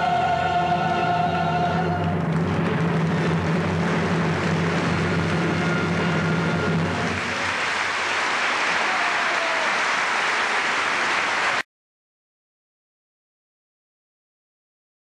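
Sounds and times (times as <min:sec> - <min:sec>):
audience applauding: 0:02.0 - 0:11.7.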